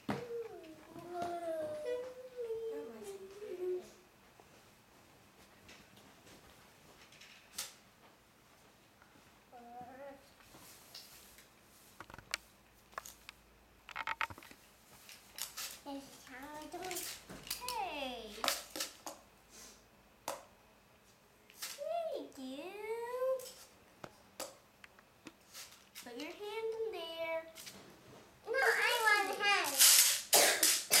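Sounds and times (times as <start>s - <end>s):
child speaking: 0.2s - 4.0s, 9.5s - 10.3s, 15.8s - 18.5s, 21.8s - 23.6s, 26.0s - 27.6s, 28.4s - 29.9s
short breathy hissing: 19.5s - 19.9s.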